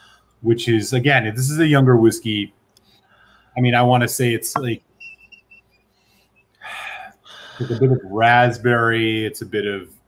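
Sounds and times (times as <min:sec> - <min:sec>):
faint high-pitched whistling tones: 0:04.6 - 0:06.6.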